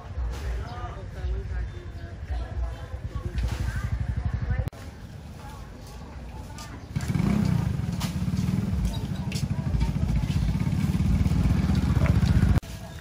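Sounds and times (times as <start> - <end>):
motorbike engine running: 2.3 - 4.7, 6.4 - 12.6.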